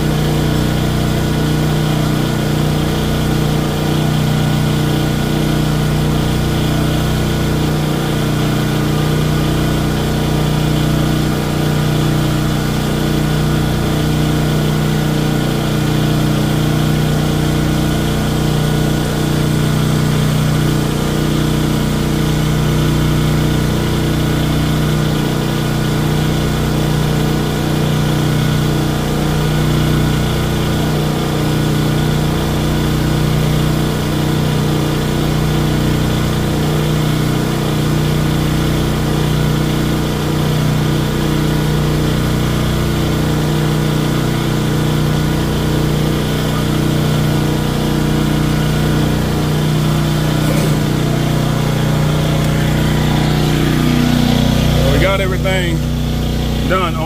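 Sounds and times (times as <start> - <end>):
generator engine running: 0.0 - 57.0.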